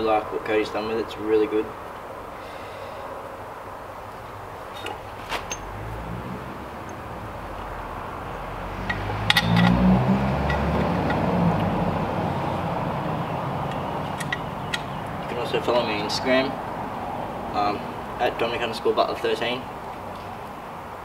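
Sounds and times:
motor vehicle passing: 0:02.1 - 0:18.3
light metallic clinks: 0:08.3 - 0:09.8.

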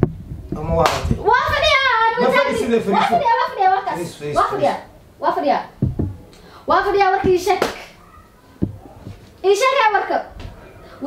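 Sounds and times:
woman talking excitedly: 0:01.2 - 0:05.7
soft thump: 0:05.8 - 0:06.2, 0:08.6 - 0:09.2.

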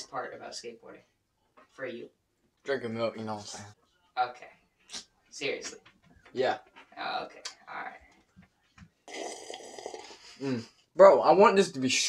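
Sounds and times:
person slurping from a mug: 0:09.0 - 0:10.6.

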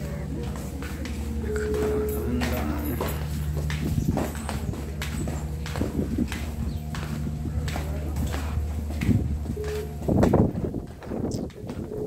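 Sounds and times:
footsteps on a hard floor: 0:00.0 - 0:12.0
steady low hum: 0:00.0 - 0:12.0.

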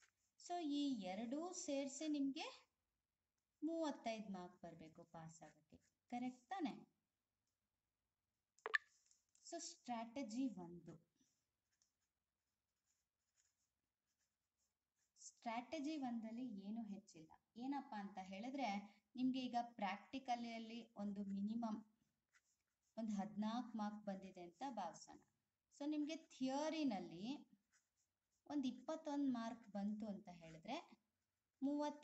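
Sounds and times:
pen scratching on paper: 0:11.7 - 0:15.2, 0:20.5 - 0:23.4, 0:27.4 - 0:28.4.

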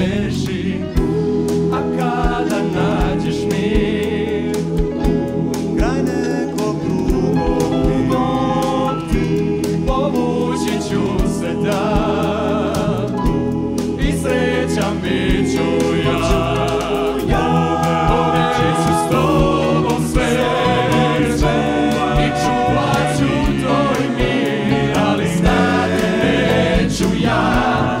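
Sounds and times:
bass guitar: 0:00.0 - 0:28.0
drums: 0:00.0 - 0:28.0
keyboards: 0:00.0 - 0:28.0
male vocal harmony singing: 0:00.0 - 0:28.0.

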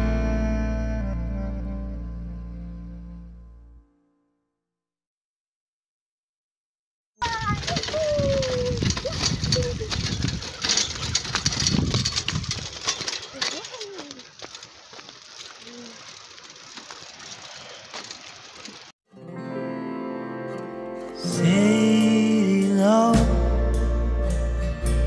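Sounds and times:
bicycle rattling over dirt: 0:07.2 - 0:19.0
background music: 0:19.2 - 0:25.0.

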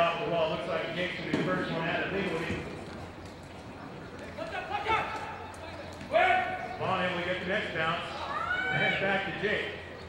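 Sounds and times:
man talking: 0:00.0 - 0:02.7, 0:06.1 - 0:08.2, 0:08.8 - 0:09.9.

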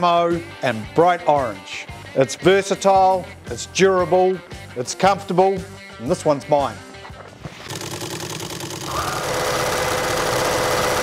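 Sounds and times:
mechanical whirring: 0:07.6 - 0:11.0.

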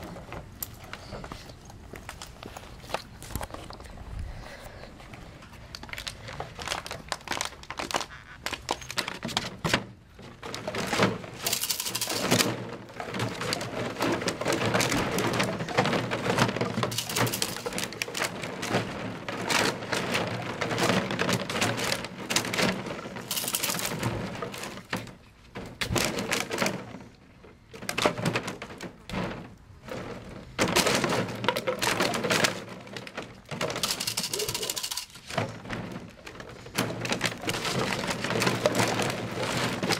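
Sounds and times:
plastic bottles crackling and clattering: 0:00.0 - 0:39.9.

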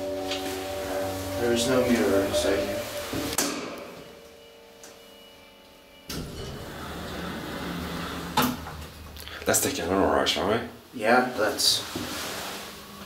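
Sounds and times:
elevator drive low hum: 0:00.0 - 0:10.2.

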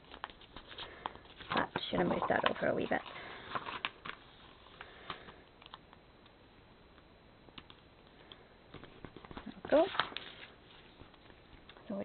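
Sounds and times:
paper handling: 0:00.0 - 0:05.8, 0:08.7 - 0:11.8.

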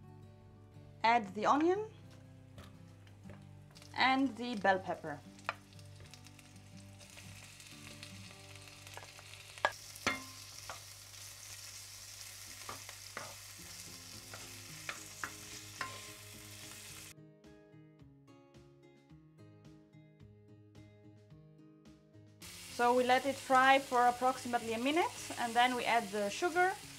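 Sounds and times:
vegetables sizzling in oil: 0:03.3 - 0:17.1, 0:22.4 - 0:26.9.

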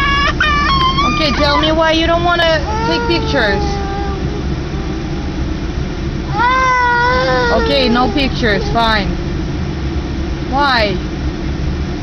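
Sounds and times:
child whining cry: 0:00.0 - 0:05.5, 0:06.3 - 0:09.1
car cabin rumble: 0:00.0 - 0:11.5.

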